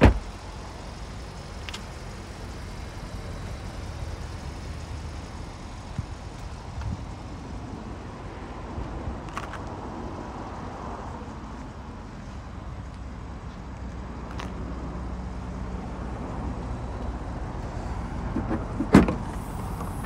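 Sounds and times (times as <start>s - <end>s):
car door shutting: 0.0s - 0.3s, 18.3s - 20.0s
low outdoor rumble: 0.0s - 20.0s.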